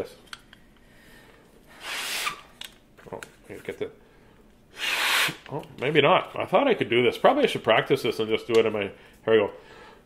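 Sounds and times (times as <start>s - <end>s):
breath blown through paper: 1.7s - 2.5s, 4.7s - 5.5s.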